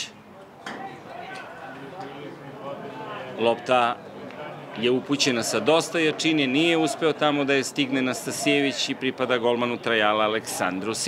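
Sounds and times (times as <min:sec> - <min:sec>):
distant players calling: 0:00.1 - 0:11.0.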